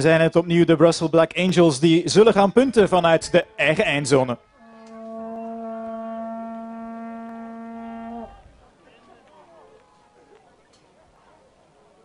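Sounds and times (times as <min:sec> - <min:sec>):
horn blowing one long note: 0:04.4 - 0:08.5.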